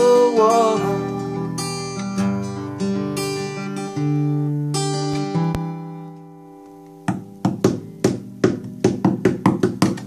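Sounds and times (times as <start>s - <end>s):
acoustic guitar chord ringing: 0.0s - 9.2s
acoustic guitar strums: 0.0s - 10.0s.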